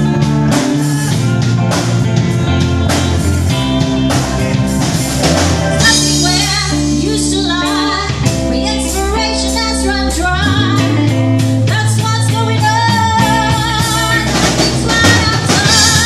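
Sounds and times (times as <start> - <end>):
light drums: 0.0 - 6.8
bass: 0.0 - 16.0
electric guitar: 0.0 - 16.0.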